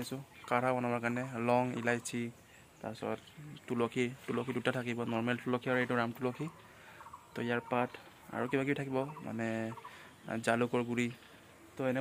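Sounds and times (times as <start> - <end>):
man speaking: 0.0 - 6.7, 7.3 - 12.0.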